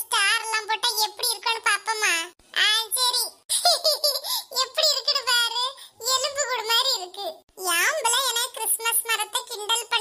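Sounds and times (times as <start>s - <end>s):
high-pitched cartoon voice laughing: 3.5s - 5.0s.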